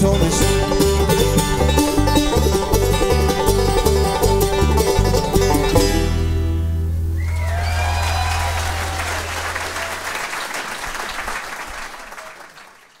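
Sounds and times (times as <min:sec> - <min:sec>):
audience shouts: 0:07.2 - 0:10.5
audience applause: 0:07.2 - 0:13.0.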